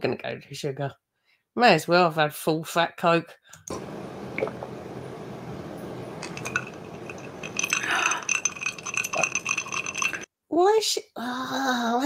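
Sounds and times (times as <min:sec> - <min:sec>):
glass ringing: 0:03.8 - 0:10.3
ice cubes clinking in glass: 0:03.8 - 0:10.3.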